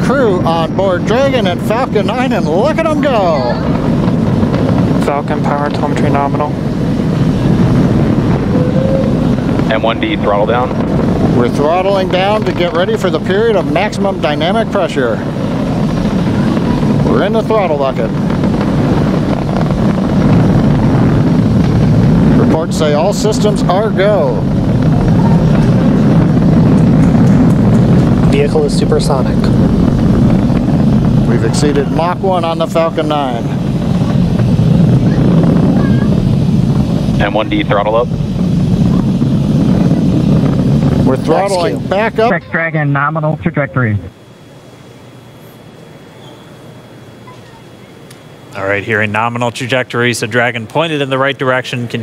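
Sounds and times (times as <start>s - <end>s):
rocket engines deep rumble: 0.0s - 52.0s.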